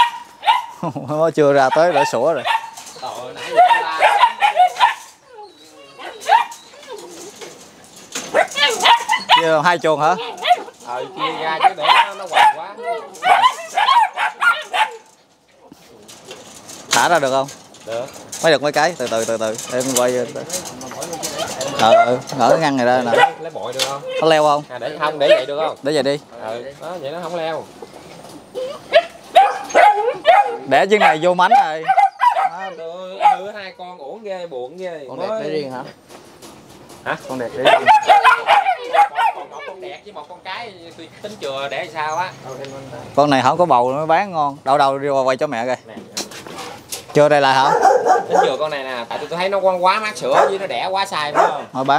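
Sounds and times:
puppy yelp: 0.0s - 0.8s, 1.6s - 7.5s, 8.2s - 15.1s, 21.0s - 25.8s, 28.0s - 33.6s, 37.6s - 40.1s, 47.5s - 48.8s, 50.3s - 50.7s, 51.3s - 51.7s
puppies barking and yipping: 0.0s - 15.5s, 16.3s - 26.2s, 26.8s - 34.2s, 36.4s - 44.3s, 46.6s - 51.9s
puppy whining: 1.7s - 15.0s, 20.6s - 25.8s, 27.1s - 33.6s, 37.7s - 40.1s.

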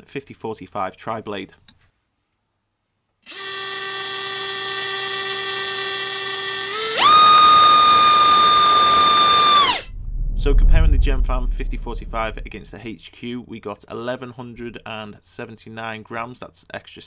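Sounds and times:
brushless motor whining: 5.2s - 9.9s.

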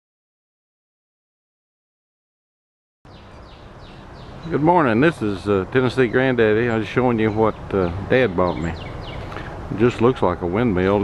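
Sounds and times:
bird chirping: 3.1s - 11.0s
outdoor background noise: 3.1s - 11.0s.

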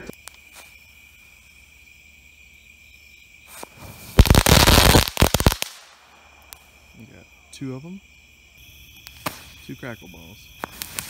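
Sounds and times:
firework crackling pops: 3.5s - 6.7s, 9.0s - 9.5s, 10.6s - 11.0s.

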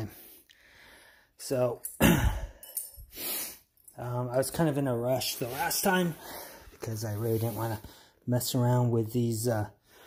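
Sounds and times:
handling scrape: 5.1s - 7.8s.

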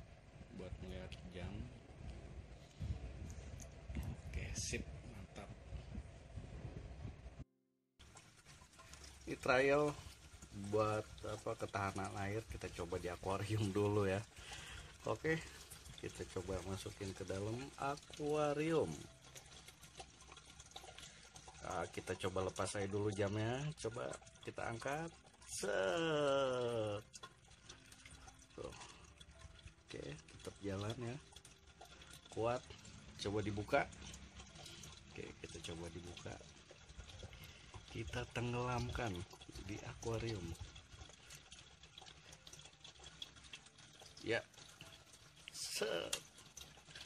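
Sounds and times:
low steady hum: 0.0s - 7.4s
water sloshing and splashing: 8.0s - 47.0s.

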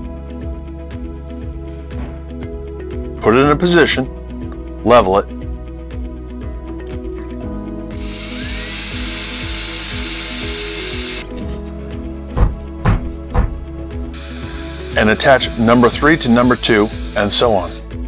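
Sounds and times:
background music: 0.0s - 18.0s
cordless drill driving screw: 7.9s - 11.2s.

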